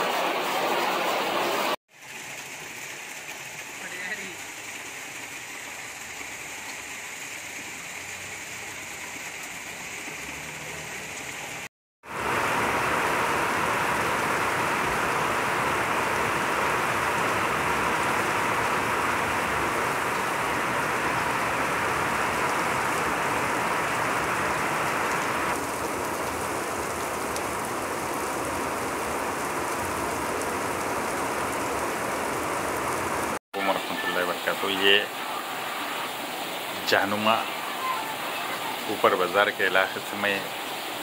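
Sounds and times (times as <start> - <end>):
heavy rain pouring: 0.0 - 41.0.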